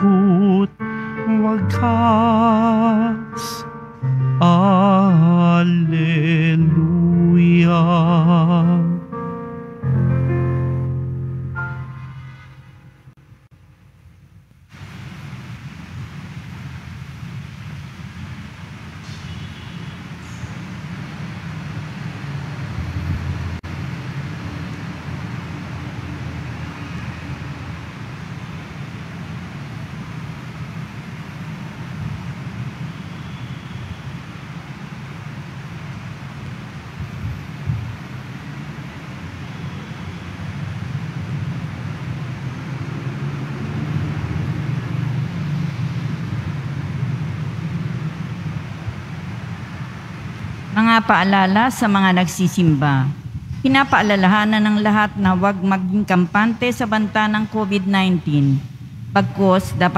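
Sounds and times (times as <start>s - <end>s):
church background rumble and hiss: 0.0s - 59.9s.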